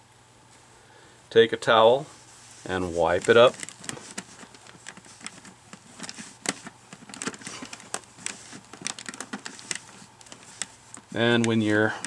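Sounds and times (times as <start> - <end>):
cloth rubbing on plastic visor: 2.1 - 12.0
small clicks and scratches: 2.5 - 12.0.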